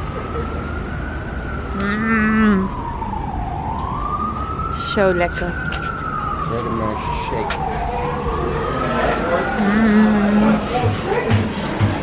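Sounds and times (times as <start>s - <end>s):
emergency siren wailing: 0.0s - 11.5s.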